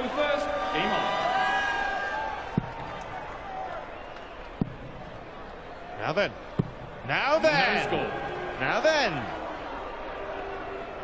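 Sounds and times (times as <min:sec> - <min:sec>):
arena crowd hubbub: 0:00.0 - 0:11.0.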